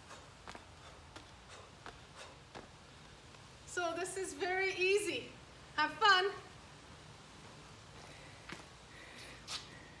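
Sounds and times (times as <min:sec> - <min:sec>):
soft breathy noises: 0:00.0 - 0:02.8.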